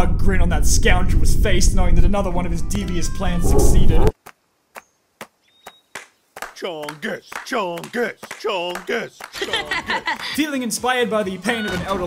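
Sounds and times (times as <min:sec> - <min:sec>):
faint high tone: 0:03.4 - 0:04.1.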